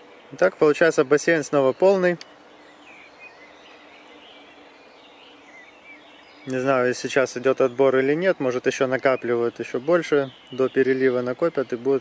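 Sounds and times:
distant bird chirps: 0.0s - 12.0s
outdoor background hiss: 0.0s - 12.0s.

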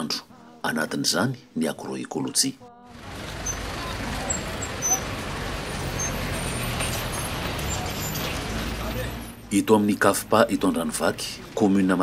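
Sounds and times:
car driving slowly past: 2.9s - 9.5s
tyres on street: 2.9s - 12.0s.

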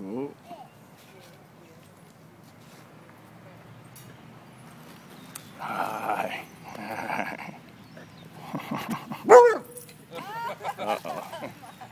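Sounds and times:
dogs barking: 5.6s - 9.8s.

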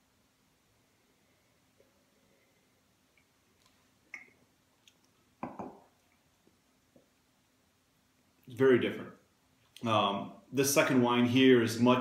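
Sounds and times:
wine glass knocking on table: 5.4s - 5.8s.

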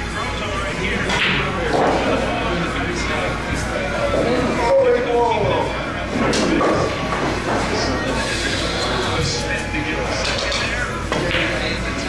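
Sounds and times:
background chatter: 0.0s - 12.0s
music playing: 0.0s - 12.0s.

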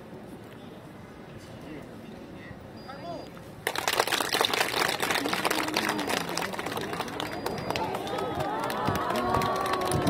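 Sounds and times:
audience applauding: 3.6s - 10.0s.

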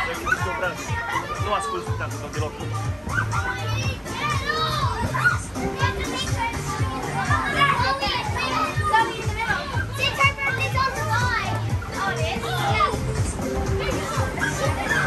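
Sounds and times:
children shouting and laughing: 0.0s - 15.0s.

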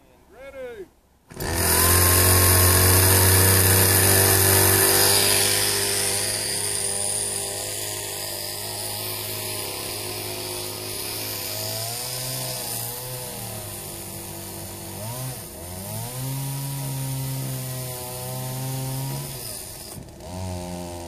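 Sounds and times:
chainsaw cutting wood: 1.3s - 21.0s.

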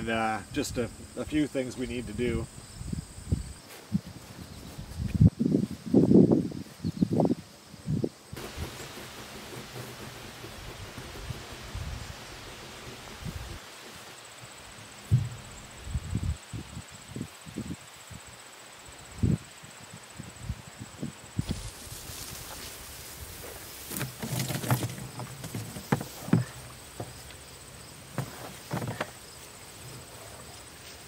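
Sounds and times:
breeze rustling grass and trees: 0.0s - 31.0s.

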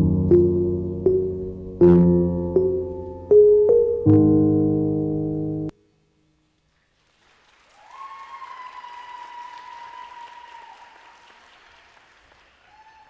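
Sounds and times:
audience applauding: 7.0s - 13.0s
high-pitched cheer: 7.8s - 11.0s.

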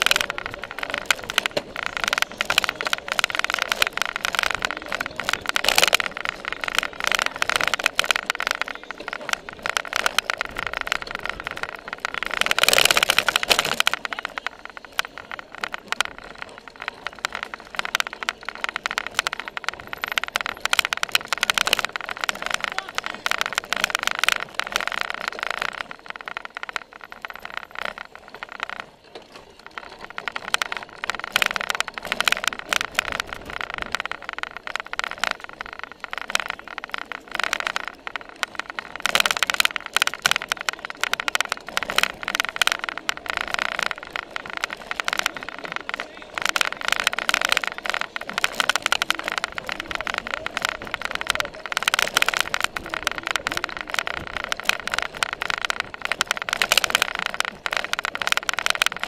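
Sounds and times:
bike rattling over bumpy grass: 0.0s - 59.0s.

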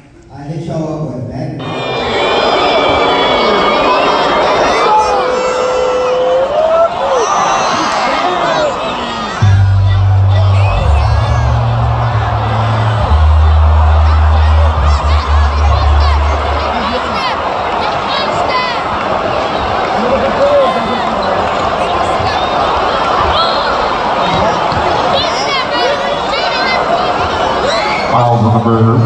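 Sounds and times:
high squeals and whoops: 1.6s - 9.4s
crowd chatter and shouts: 1.6s - 29.0s
music with heavy bass beat: 9.4s - 16.6s.

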